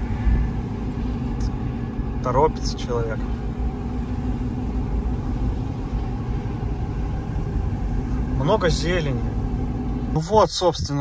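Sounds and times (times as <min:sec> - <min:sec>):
car interior road rumble: 0:00.0 - 0:11.0
faint steady hum: 0:00.0 - 0:11.0.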